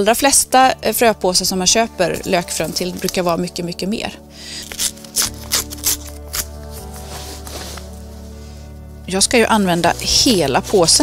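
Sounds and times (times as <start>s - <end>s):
background music: 0.0s - 11.0s
seed packet tearing open: 4.5s - 6.8s.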